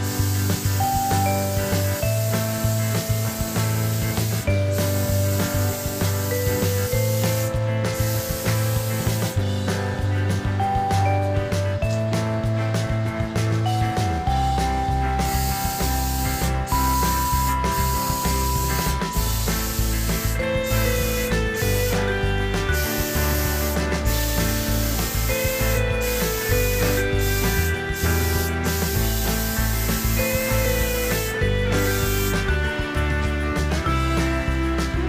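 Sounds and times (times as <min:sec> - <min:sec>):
paint spray gun hissing: 0:00.0 - 0:09.4, 0:14.4 - 0:32.6.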